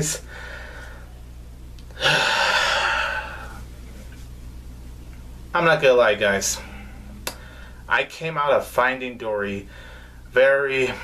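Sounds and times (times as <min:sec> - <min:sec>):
man sighing: 0:01.9 - 0:03.6.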